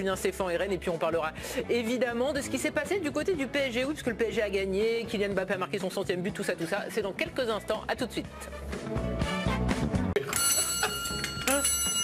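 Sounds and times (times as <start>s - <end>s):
bell-like ringing chord: 10.3s - 12.0s.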